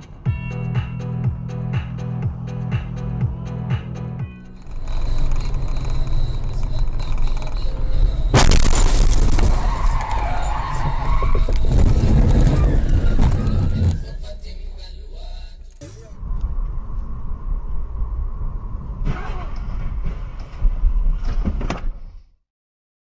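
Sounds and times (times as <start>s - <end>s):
electronic music beat: 0.3s - 4.5s
sharp crash: 8.3s - 10.2s.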